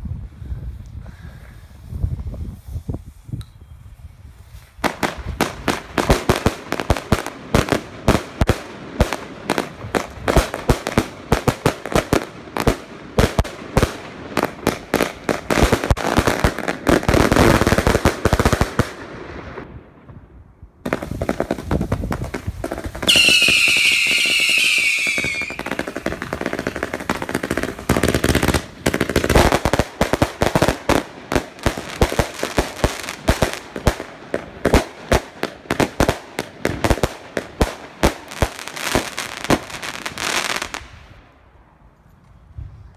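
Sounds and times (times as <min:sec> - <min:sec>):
fireworks shots and crackling bangs: 0:04.8 - 0:41.2
shrill firework whistles: 0:23.1 - 0:25.8.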